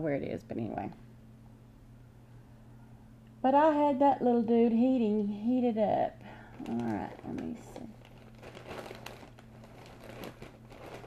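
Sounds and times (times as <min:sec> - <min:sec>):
steady low hum: 0:00.0 - 0:11.0
faint rustling: 0:06.3 - 0:11.0.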